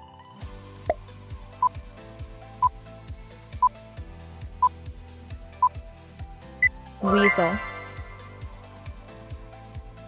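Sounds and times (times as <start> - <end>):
background music with drum beat: 0.4 - 10.0
countdown timer beeps: 6.6 - 8.3.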